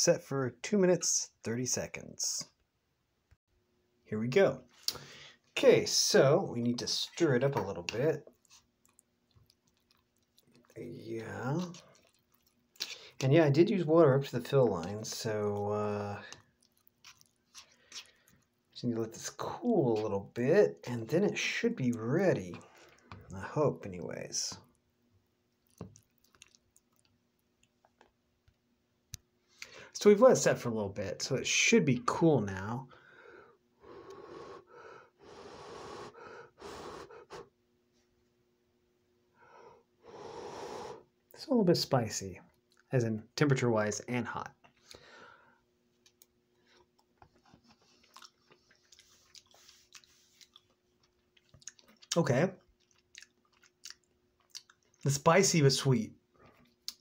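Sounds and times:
faint steady hum: 0:00.0 - 0:57.0
person chewing food: 0:06.9 - 0:18.8, 0:21.9 - 0:28.3, 0:42.5 - 0:42.9, 0:45.9 - 0:55.1, 0:56.3 - 0:57.0.

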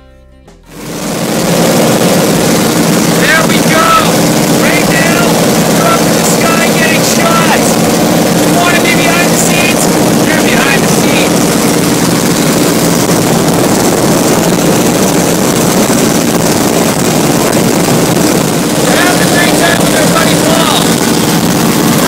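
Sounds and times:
propeller plane engine droning: 0:00.6 - 0:22.0
wind noise rushing: 0:00.7 - 0:22.0.

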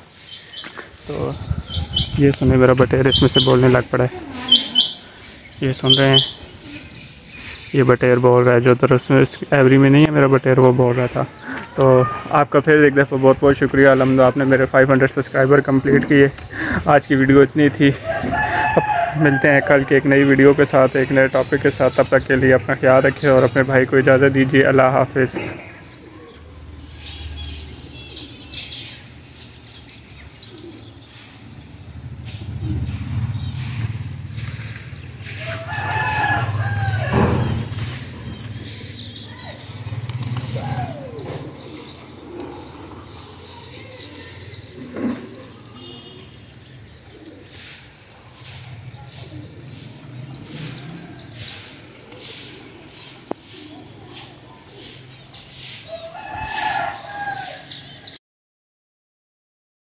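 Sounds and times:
long bird call: 0:03.1 - 0:07.7, 0:25.8 - 0:34.0, 0:34.6 - 0:58.2
rooster crowing: 0:18.0 - 0:19.7, 0:35.4 - 0:37.4, 0:55.9 - 0:57.9.

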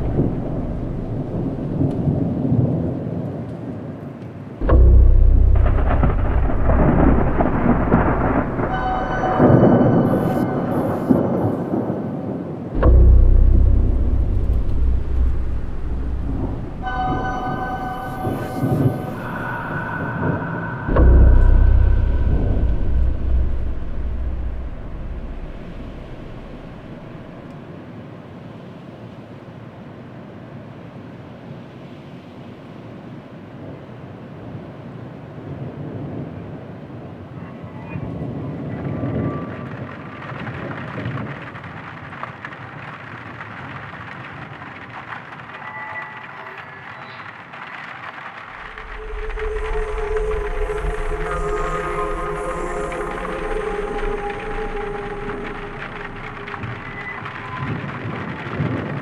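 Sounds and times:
low drone and synth tones: 0:00.0 - 0:02.6, 0:04.6 - 0:27.6, 0:48.6 - 0:58.4
deep low rumble: 0:00.0 - 0:02.8, 0:04.6 - 0:27.6, 0:48.5 - 0:59.0
rain-like hiss: 0:00.0 - 0:59.0.

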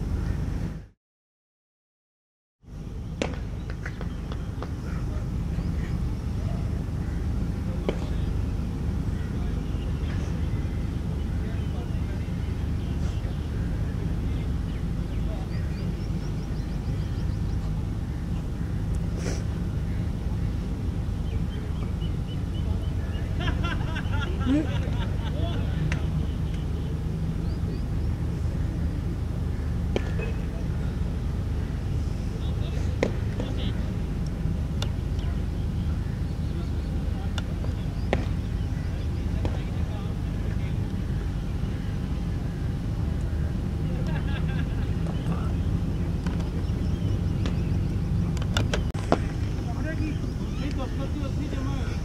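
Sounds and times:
low outdoor rumble: 0:00.0 - 0:01.0, 0:02.6 - 0:52.0
faint voices talking: 0:04.4 - 0:52.0.

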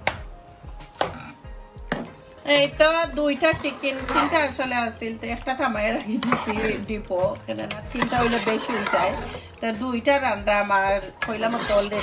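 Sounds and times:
spatula scraping in frying pan: 0:03.4 - 0:04.9, 0:05.6 - 0:09.5, 0:11.2 - 0:12.0.

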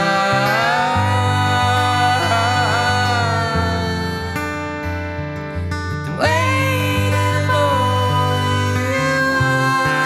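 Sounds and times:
man singing: 0:00.0 - 0:04.4, 0:06.2 - 0:10.0
acoustic guitar chords: 0:00.0 - 0:10.0.

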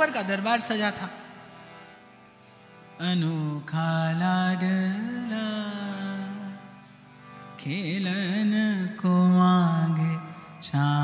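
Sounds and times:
man singing long held notes: 0:07.6 - 0:11.0.

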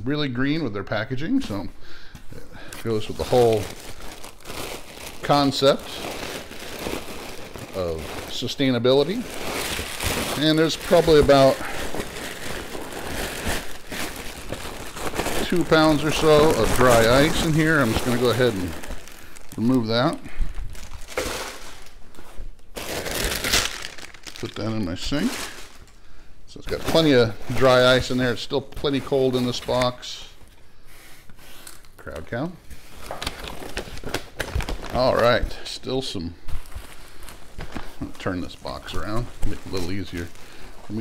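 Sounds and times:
plastic packaging crinkling: 0:02.6 - 0:26.0, 0:31.7 - 0:41.0
cardboard and foam rustling: 0:02.7 - 0:25.8, 0:36.1 - 0:41.0.

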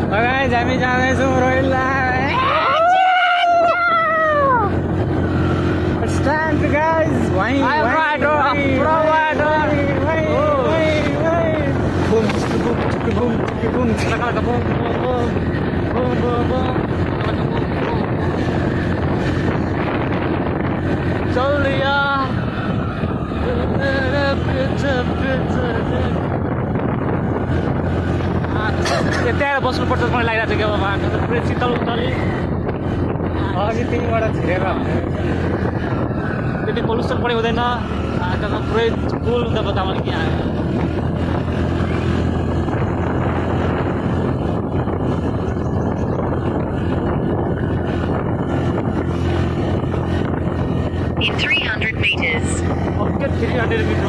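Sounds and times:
wind buffeting microphone: 0:00.0 - 0:54.0
motorcycle engine running: 0:04.5 - 0:54.0.

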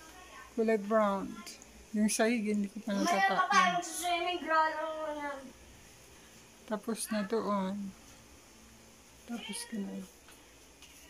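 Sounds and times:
woman's voice with held note: 0:00.0 - 0:05.4, 0:09.3 - 0:10.1.

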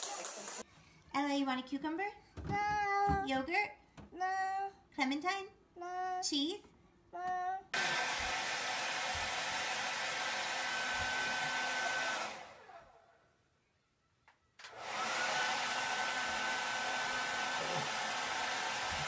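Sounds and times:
hair dryer whine and air rush: 0:07.8 - 0:13.0, 0:14.6 - 0:19.0.

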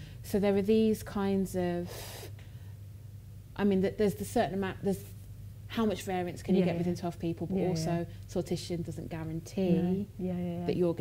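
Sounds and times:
low room hum: 0:00.0 - 0:11.0
woman speaking: 0:00.3 - 0:02.0, 0:03.6 - 0:05.1, 0:05.7 - 0:11.0.

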